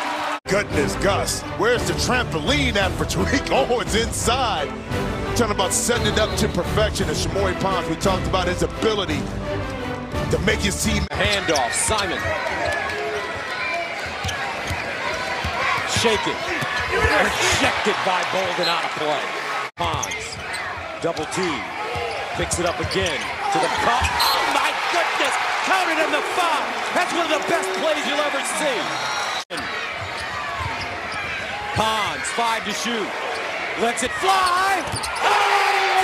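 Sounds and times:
arena crowd noise: 0.0 - 9.3, 10.0 - 36.0.

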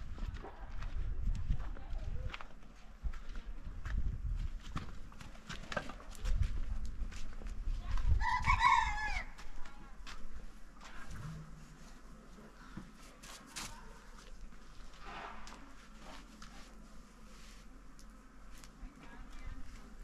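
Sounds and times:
footsteps on stony ground: 0.0 - 20.0
rooster crowing: 8.2 - 9.4.

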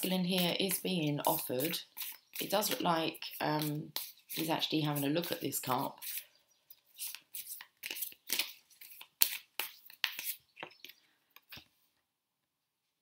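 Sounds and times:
cards rustling and snapping: 6.0 - 11.7.

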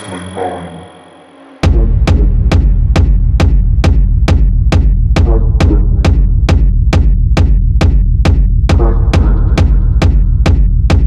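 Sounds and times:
techno track with deep bass: 0.0 - 11.0.

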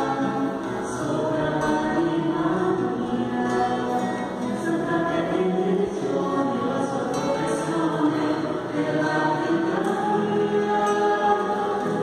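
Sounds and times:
group singing a hymn: 0.0 - 12.0.

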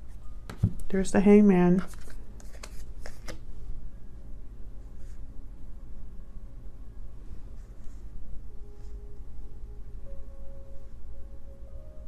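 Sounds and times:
cards clicking and snapping: 1.8 - 3.4.

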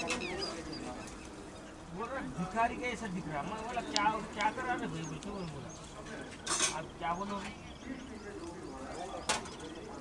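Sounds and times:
faint voices talking: 0.0 - 10.0
small birds chirping: 0.0 - 10.0.

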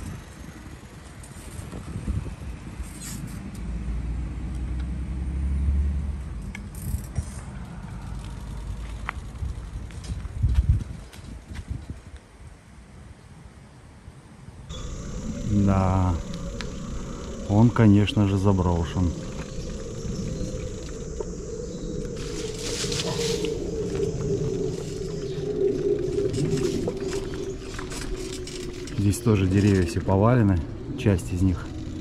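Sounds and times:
bicycle tyres rolling: 0.0 - 3.4, 6.4 - 11.9, 14.7 - 32.0
wind on microphone: 0.0 - 3.4, 9.0 - 12.2, 14.7 - 32.0
man speaking: 15.4 - 16.3, 17.4 - 19.2, 29.0 - 31.7.

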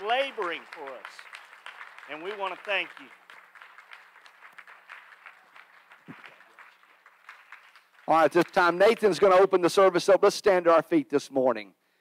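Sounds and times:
faint scattered applause: 0.0 - 9.9.

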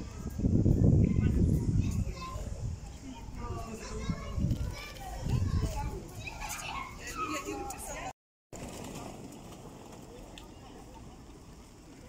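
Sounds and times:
children playing and chattering: 0.0 - 12.0.

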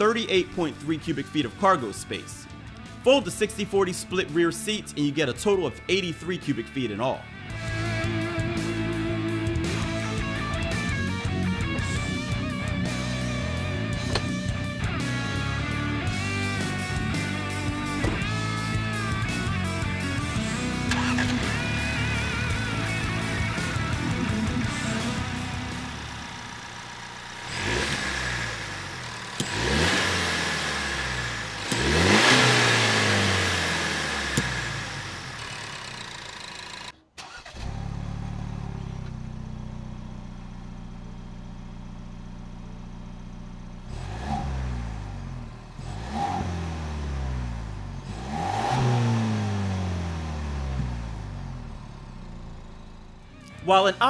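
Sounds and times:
car engine idling and revving: 0.0 - 54.0
car engine accelerating through upshifts: 27.4 - 36.0, 43.9 - 51.6.

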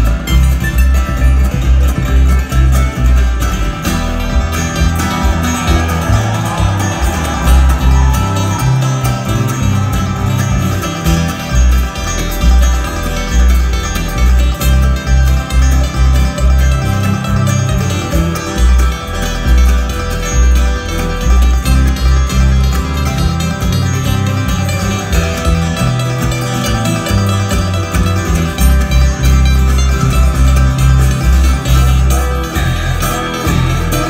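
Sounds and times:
bluegrass band playing: 0.0 - 34.0
walking upright bass: 0.0 - 34.0.

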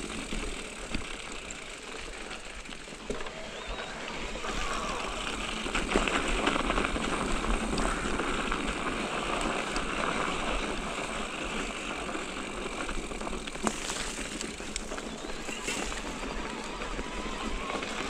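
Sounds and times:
bike rattling: 0.0 - 18.0
bike tyres on dirt trail: 0.0 - 18.0.

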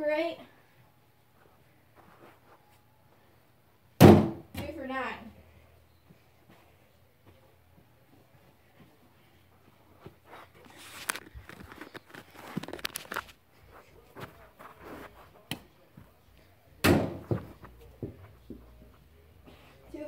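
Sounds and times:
thumps and knocks of balls: 16.8 - 18.2.

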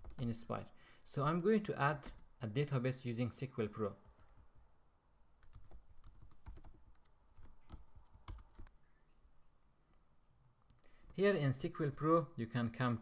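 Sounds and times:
computer keyboard typing: 0.0 - 0.4, 4.0 - 4.6, 5.4 - 8.7.

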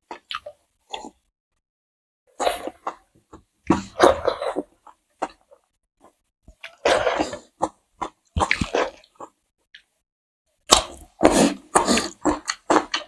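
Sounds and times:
people chewing and lip smacking: 0.0 - 1.2, 2.4 - 9.9, 10.7 - 13.0.

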